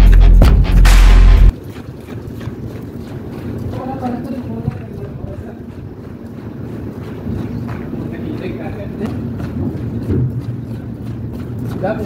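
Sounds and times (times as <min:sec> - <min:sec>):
wind buffeting microphone: 0:01.5 - 0:12.0.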